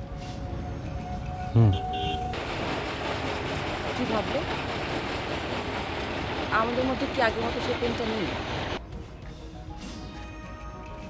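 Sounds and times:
soft background music: 8.8s - 11.0s.

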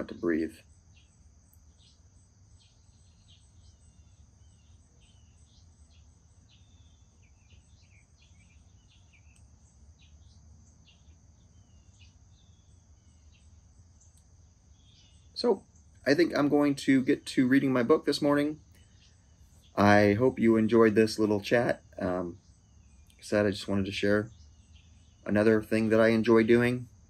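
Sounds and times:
high-pitched insect trill: 0.0s - 16.8s, 20.8s - 27.0s
bird chirps: 0.0s - 27.0s.

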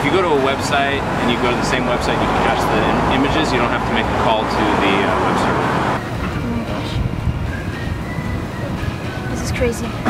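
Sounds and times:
outdoor background noise: 0.0s - 10.0s
road traffic noise: 0.0s - 10.0s.

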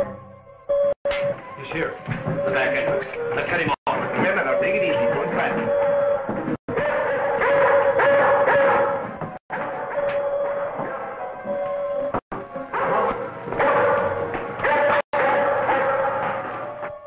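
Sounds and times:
dog barking: 6.7s - 10.2s, 12.7s - 16.6s.

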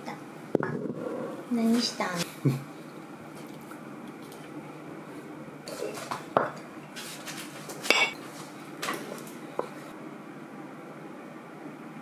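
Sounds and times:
spoon scraping ceramic plate: 7.9s - 8.2s.

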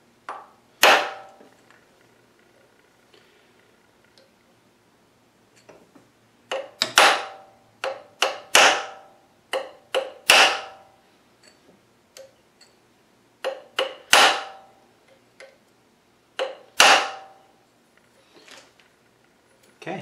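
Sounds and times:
hammer striking metal punch: 0.3s - 1.4s, 6.5s - 10.9s, 13.4s - 14.7s, 16.4s - 17.4s.

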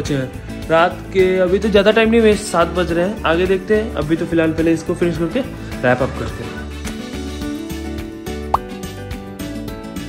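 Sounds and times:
upbeat background music: 0.0s - 10.0s.

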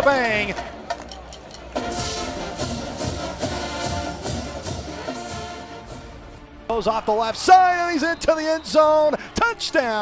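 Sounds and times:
marching band brass chords: 0.5s - 6.9s
steady drum beat: 1.8s - 6.3s.

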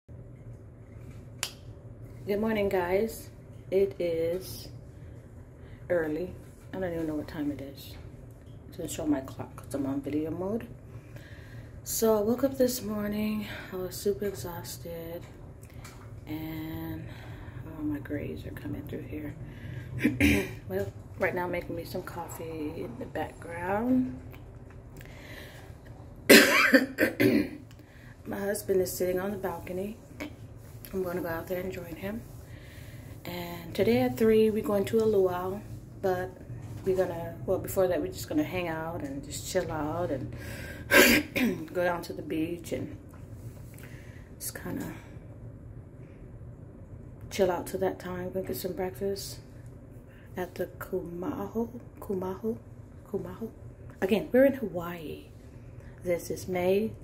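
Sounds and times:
low room hum: 0.0s - 57.0s
woman coughing: 20.0s - 20.6s, 26.3s - 27.6s, 40.9s - 41.7s.

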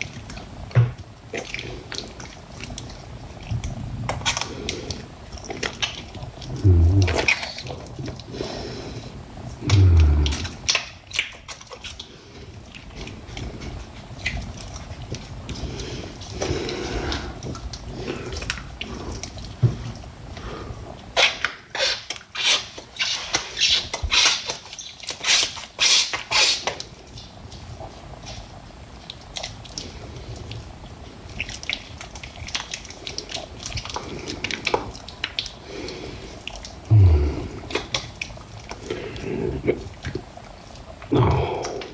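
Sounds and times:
wet squelches: 1.2s - 41.9s.

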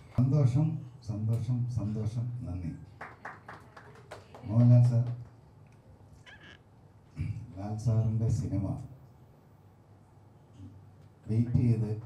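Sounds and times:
man speaking into a microphone: 0.2s - 2.9s, 7.2s - 9.0s, 11.2s - 12.0s.

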